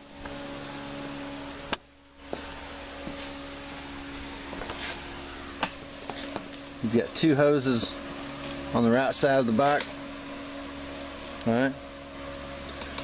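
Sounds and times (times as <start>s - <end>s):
electric fan humming: 0.0s - 13.0s.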